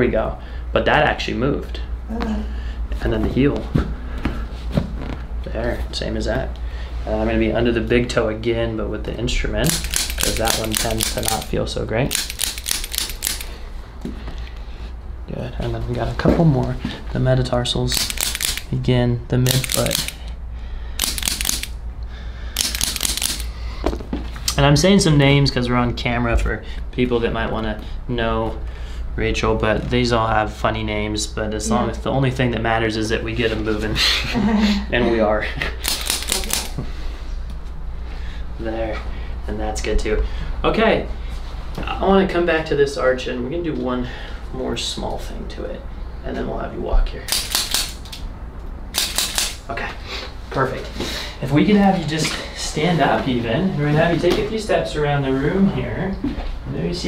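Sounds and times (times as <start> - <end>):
crackly rattling instrument bursts: 9.7 - 13.6, 17.9 - 18.8, 19.5 - 20.3, 21.0 - 21.8, 22.6 - 23.6, 35.8 - 36.8, 48.9 - 49.7.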